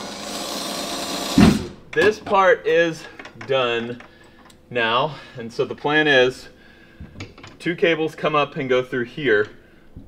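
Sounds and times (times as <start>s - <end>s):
cordless drill running: 0.0s - 1.5s
loud dull thump: 1.4s - 1.8s.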